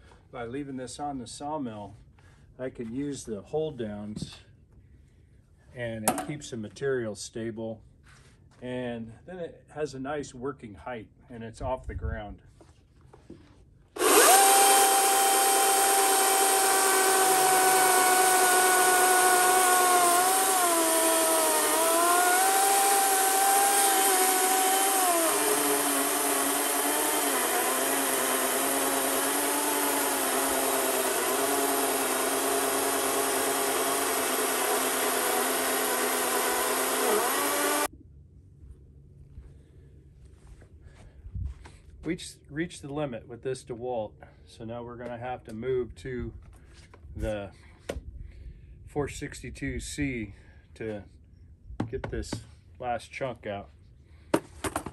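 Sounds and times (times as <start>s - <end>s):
electric chainsaw cutting log: 14.0s - 37.9s.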